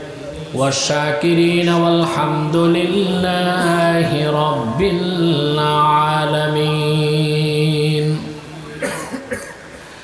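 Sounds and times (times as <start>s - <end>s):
chanted recitation: 0.0s - 8.9s
man coughing: 3.6s - 3.9s, 8.8s - 9.7s.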